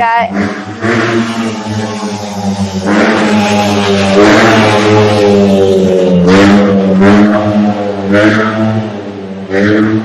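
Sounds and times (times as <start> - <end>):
motor vehicle engine droning: 0.0 - 10.0.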